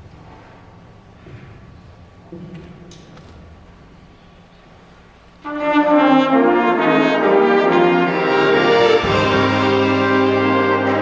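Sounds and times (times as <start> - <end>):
low room hum: 0.0 - 11.0
soft instrument notes: 5.4 - 11.0.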